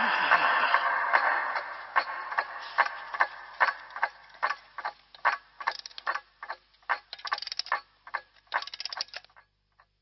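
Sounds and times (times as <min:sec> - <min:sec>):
sharp mechanical clicks: 0:03.2 - 0:09.4.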